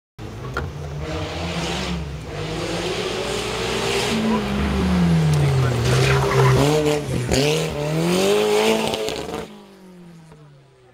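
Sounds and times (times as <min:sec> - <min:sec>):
race car engine approaching: 0:00.2 - 0:10.9.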